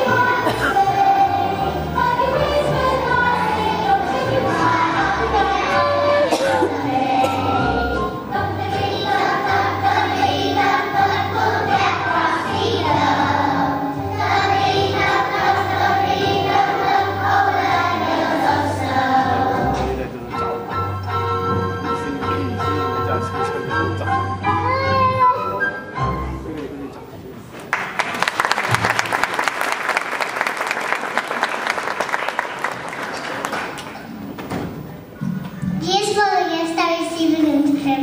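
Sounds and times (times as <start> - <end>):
children's choir singing: 0.0 - 24.1
musical accompaniment: 0.0 - 27.2.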